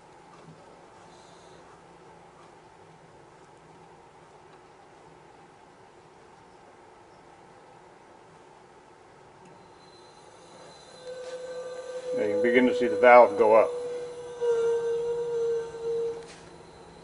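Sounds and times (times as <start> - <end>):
fog machine hum: 9.4 - 17.0
pitched tone with high whine: 9.6 - 17.0.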